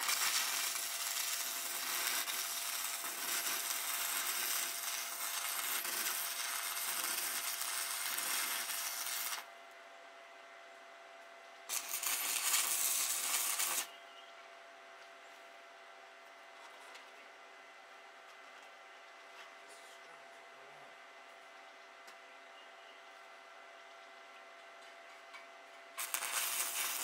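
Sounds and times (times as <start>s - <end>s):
arc welding crackling: 0.0s - 9.5s, 11.7s - 13.9s, 26.0s - 27.0s.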